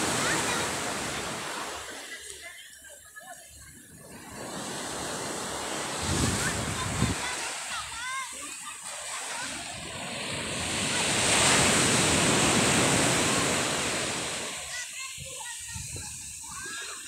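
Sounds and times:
wave breaking on shore: 0.0s - 2.5s, 3.9s - 17.0s.

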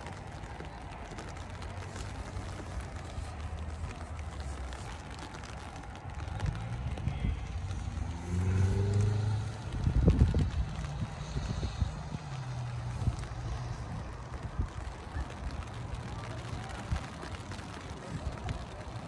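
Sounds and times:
motor vehicle engine running: 0.0s - 19.0s.

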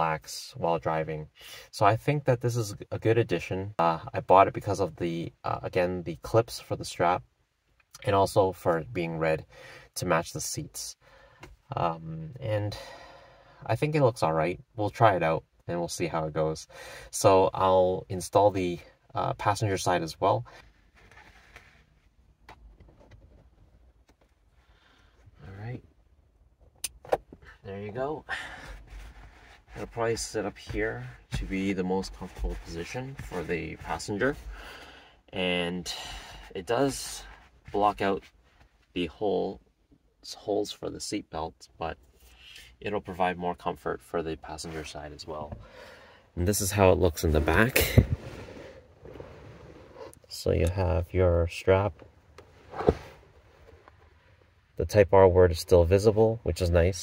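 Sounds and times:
fabric handling: 52.3s - 54.1s.

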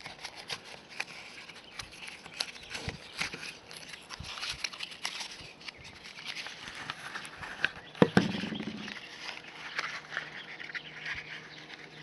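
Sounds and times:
camera knocking against case: 8.0s - 8.9s.

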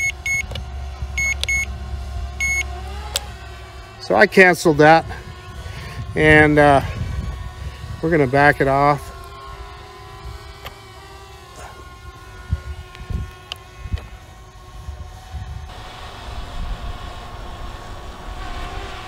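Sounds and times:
drone propellers humming: 0.0s - 19.0s
wind on microphone: 4.4s - 10.6s, 11.8s - 19.0s.

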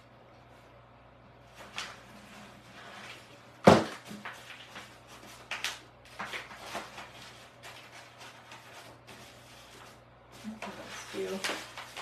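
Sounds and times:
paper rustling: 1.4s - 12.0s.

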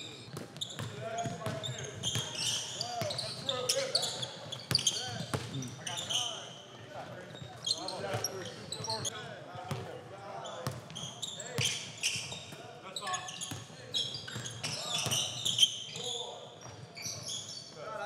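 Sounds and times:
sneaker squeaks: 0.0s - 6.6s, 7.3s - 9.1s, 10.4s - 17.8s.

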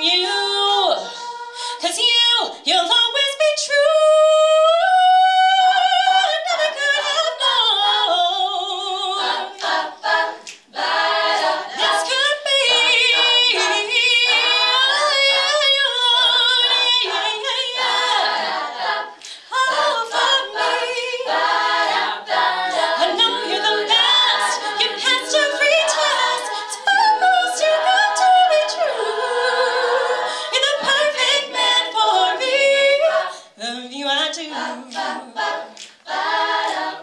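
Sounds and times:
women singing a cappella: 0.0s - 37.0s.

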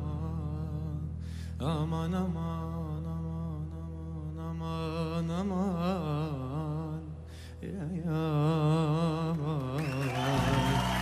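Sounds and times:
man singing wordless ornamented vocal: 0.0s - 11.0s.

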